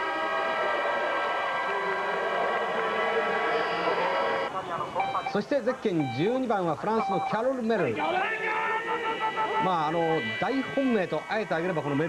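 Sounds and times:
crowd: 0.0s - 12.0s
horns sounding held chord: 7.8s - 12.0s.

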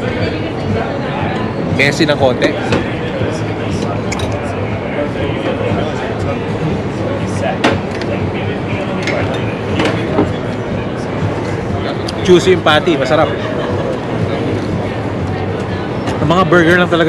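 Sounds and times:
murmur of diners' voices: 0.0s - 17.0s
cutlery clicking against plates: 4.1s - 4.4s.

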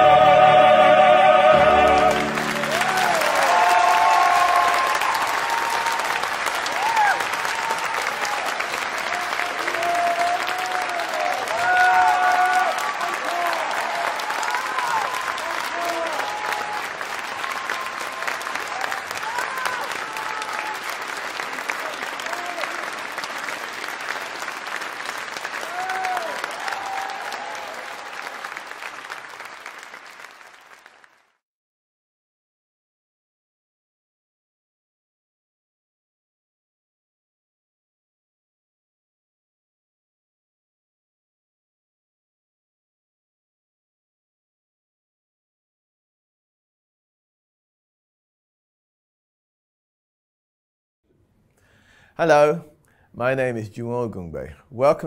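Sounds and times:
opera singers holding chord: 0.0s - 3.2s
audience applauding: 1.6s - 31.4s.

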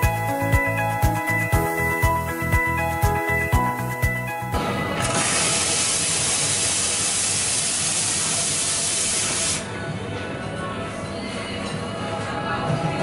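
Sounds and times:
background music: 0.0s - 6.9s, 9.1s - 13.0s
steam wand hissing: 5.0s - 9.7s.

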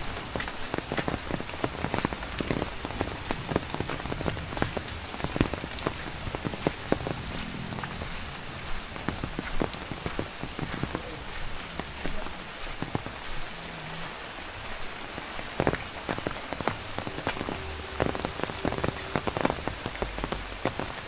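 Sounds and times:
rain falling: 0.0s - 21.0s
raindrops tapping on umbrella: 0.0s - 21.0s.

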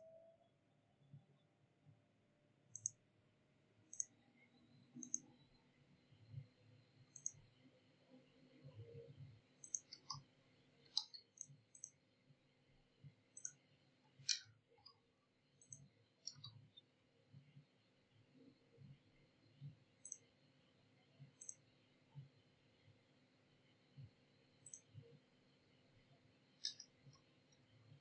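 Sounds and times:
mouse button clicks: 5.0s - 5.2s, 9.6s - 10.2s.

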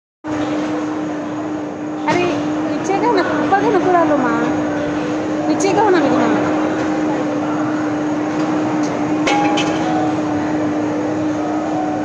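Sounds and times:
steady mechanical hum: 0.2s - 12.0s.

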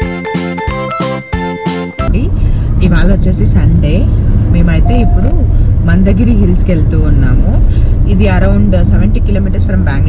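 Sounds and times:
car cabin road and engine rumble: 2.0s - 10.0s
woman talking: 2.1s - 10.0s.

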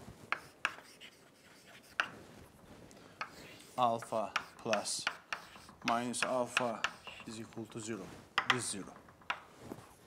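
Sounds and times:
chalk scratching on blackboard: 0.2s - 2.5s, 3.2s - 8.5s
chalk tap on board: 0.3s - 2.2s, 3.2s - 7.3s, 8.4s - 9.4s.

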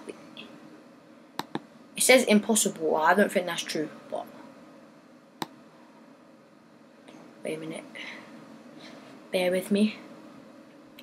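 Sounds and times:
computer mouse click: 1.4s - 1.7s.

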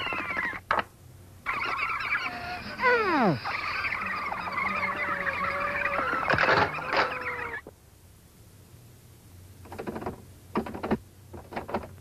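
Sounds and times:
faint low hum: 0.0s - 12.0s
rasping animal-like call: 1.5s - 7.7s.

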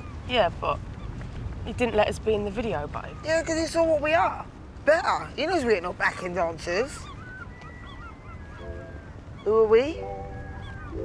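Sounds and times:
wind buffeting microphone: 0.0s - 11.0s
high chirps and gliding tones: 7.3s - 11.0s.

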